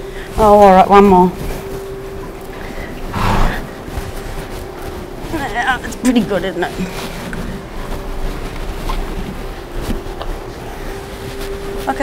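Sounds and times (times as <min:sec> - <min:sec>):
horse snorting: 0:03.1 - 0:03.8.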